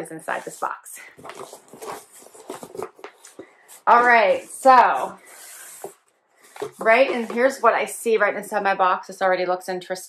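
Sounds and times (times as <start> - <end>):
cardboard box rustling and scraping: 0.3 - 7.6.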